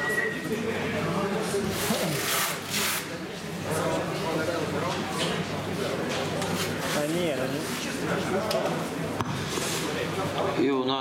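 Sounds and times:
murmur of conversation: 0.0 - 11.0.

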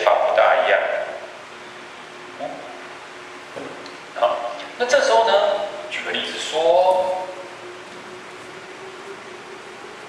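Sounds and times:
faint even hum: 0.0 - 10.0.

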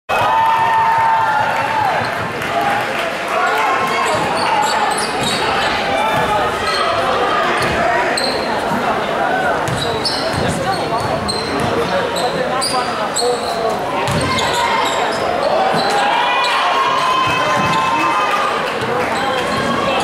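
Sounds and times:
echoing crowd voices: 0.1 - 20.0
sneakers squeaking: 3.8 - 8.8, 9.5 - 18.1, 18.8 - 20.0.

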